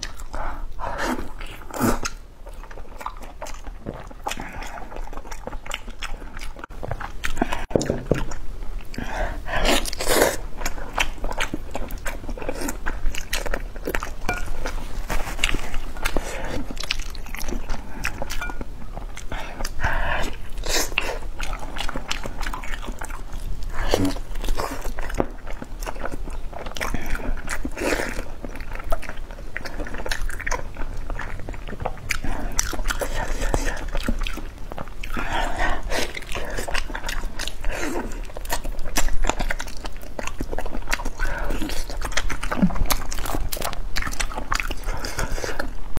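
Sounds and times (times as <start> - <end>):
biting and wet chewing: 0.0 - 46.0.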